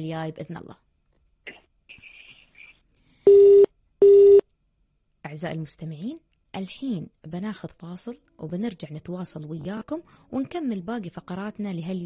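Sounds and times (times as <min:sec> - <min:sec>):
telephone busy tone beeps: 0:03.3 - 0:04.4.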